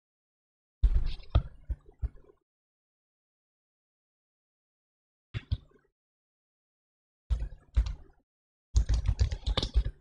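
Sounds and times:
typing on computer keyboard: 8.8s - 10.0s.

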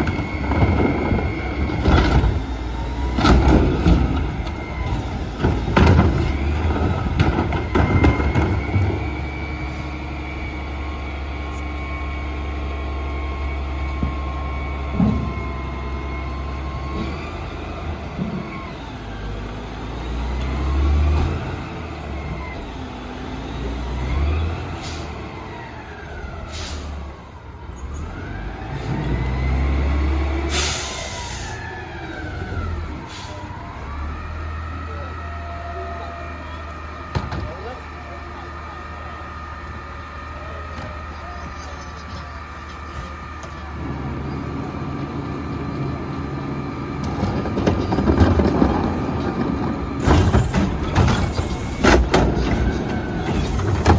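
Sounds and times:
garbage truck engine revving: 0.0s - 37.2s, 37.8s - 53.9s
short air hisses: 30.5s - 31.6s.

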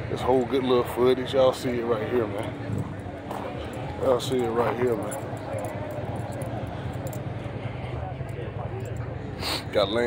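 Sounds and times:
distant people talking: 0.0s - 10.0s.

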